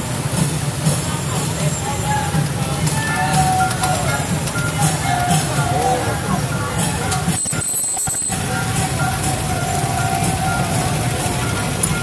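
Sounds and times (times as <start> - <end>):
music: 0.0 - 12.0
vehicle engines droning: 0.0 - 12.0
voices: 0.0 - 12.0.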